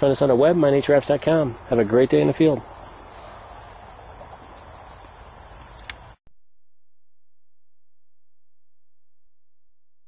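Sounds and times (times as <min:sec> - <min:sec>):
insects singing: 0:00.0 - 0:06.2.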